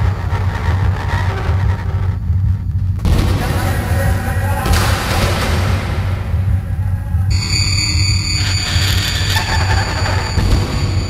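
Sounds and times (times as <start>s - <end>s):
noisy electronic texture: 0.0s - 11.0s
pulsing low bass drone: 0.0s - 11.0s
thin steady high tones: 6.3s - 11.0s.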